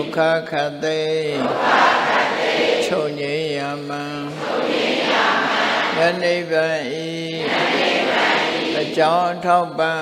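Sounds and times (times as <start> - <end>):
person chanting: 0.0 - 10.0.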